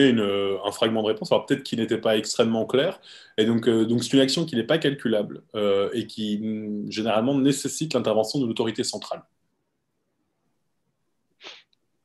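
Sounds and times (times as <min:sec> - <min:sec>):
man's sharp breath: 0:11.4 - 0:11.7.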